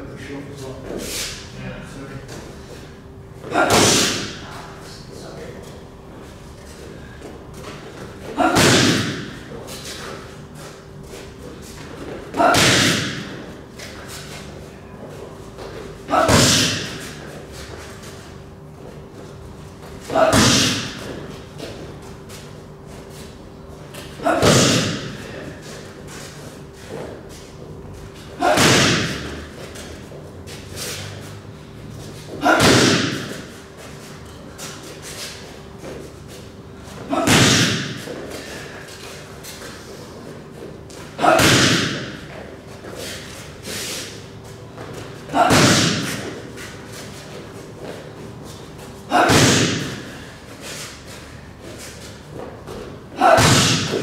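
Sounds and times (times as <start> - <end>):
boxing gloves hitting pads: 3.5 - 4.4, 8.4 - 9.5, 12.4 - 13.5, 16.1 - 17.1, 20.1 - 21.8, 24.2 - 25.4, 28.4 - 29.5, 32.4 - 33.5, 37.1 - 38.2, 41.2 - 42.4, 45.4 - 46.4, 49.1 - 50.2, 52.7 - 54.0.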